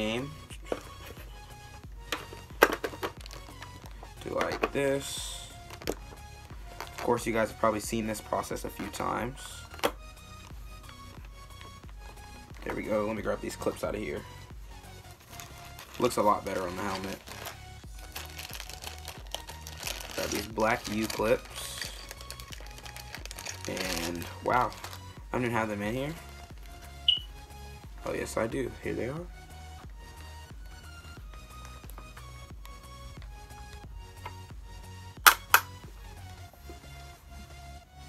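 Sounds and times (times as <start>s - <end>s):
background music: 0.0s - 38.0s
plastic bag crinkling: 2.3s - 3.7s, 15.2s - 25.1s
plastic clip snapping: 35.2s - 35.8s.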